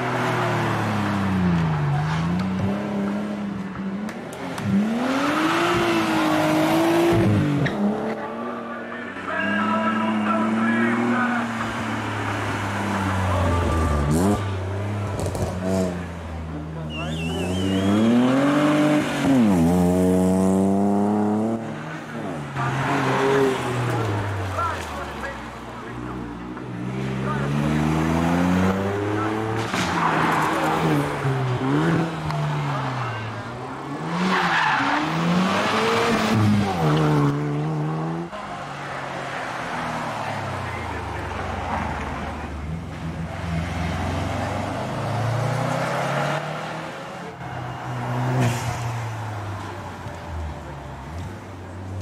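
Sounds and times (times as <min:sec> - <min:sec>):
car engine revving: 0:10.1 - 0:49.6.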